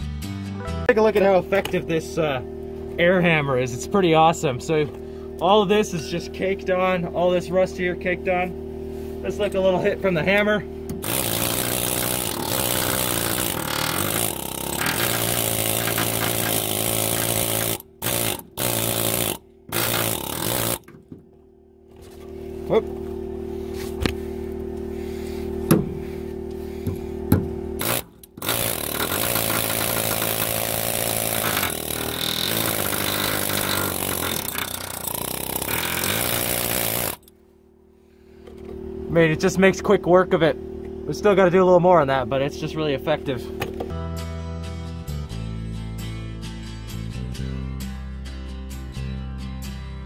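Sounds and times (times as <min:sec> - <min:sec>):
steady low hum: 0:01.0 - 0:43.8
pneumatic air hammer chipping metal: 0:10.9 - 0:21.0, 0:26.8 - 0:37.3.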